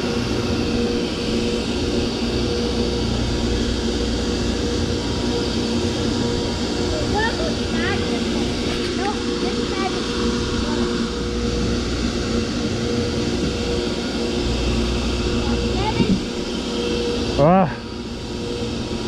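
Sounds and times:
machinery hum: 0.0 - 19.0.

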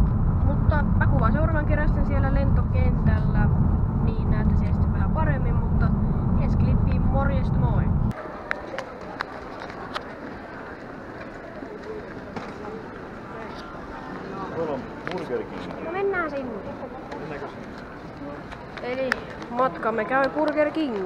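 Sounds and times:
car interior road rumble: 0.0 - 8.1
indistinct voices: 0.0 - 21.0
murmur of talk: 0.5 - 21.0.

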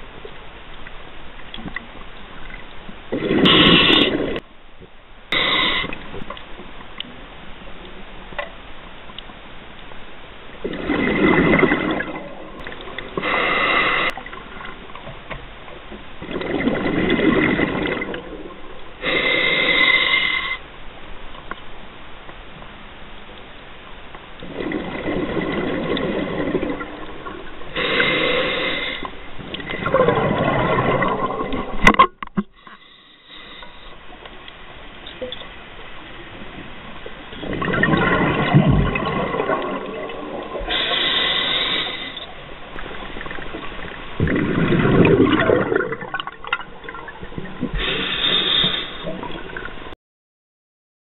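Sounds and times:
faint clicks and crackles: 0.0 - 5.0, 5.8 - 13.4, 14.0 - 19.0, 20.6 - 28.0, 28.9 - 49.9
steady underwater hiss: 0.0 - 49.9
bubbles rushing and gurgling: 3.1 - 4.4, 10.6 - 15.2, 16.2 - 19.1, 24.4 - 32.2, 36.6 - 50.0
steady regulator hiss: 5.3 - 6.1, 13.2 - 14.2, 19.0 - 20.6, 27.7 - 29.3, 32.6 - 34.1, 40.6 - 43.0, 47.7 - 49.2.

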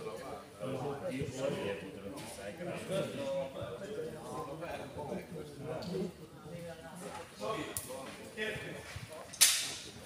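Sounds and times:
sharp crack: 9.4 - 9.8.

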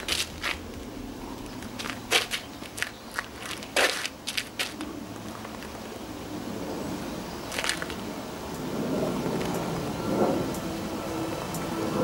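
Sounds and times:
feet scraping on gritty asphalt: 0.0 - 6.0, 7.5 - 8.0.

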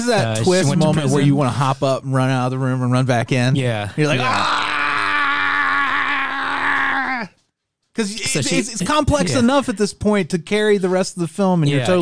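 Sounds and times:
man crying out: 4.1 - 7.3.

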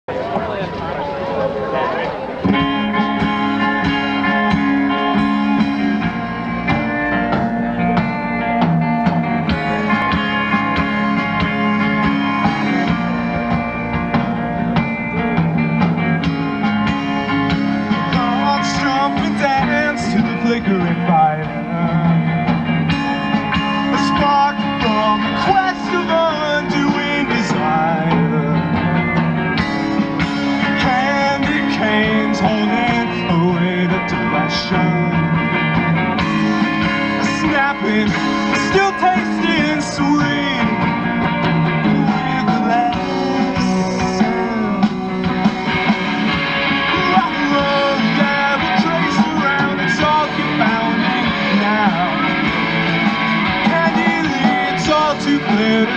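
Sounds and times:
rock band playing: 0.1 - 55.9
wavering lead melody: 0.8 - 55.9.

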